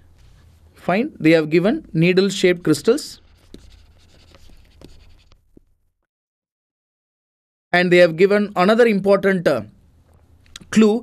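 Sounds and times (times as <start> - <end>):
stylus scratching on tablet: 2.7 - 5.4.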